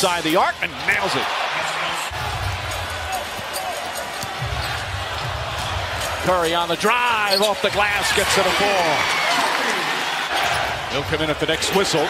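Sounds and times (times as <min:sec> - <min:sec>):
arena crowd noise: 0:00.0 - 0:12.0
basketball bouncing on court: 0:02.1 - 0:06.3.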